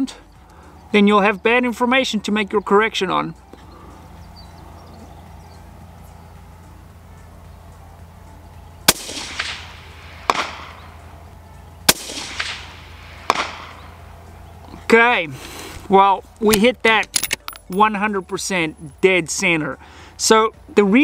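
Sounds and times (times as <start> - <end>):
bullet striking steel plate: 8.9 - 10.8, 11.9 - 13.8
suppressed rifle shots: 8.9 - 10.9, 11.8 - 13.9.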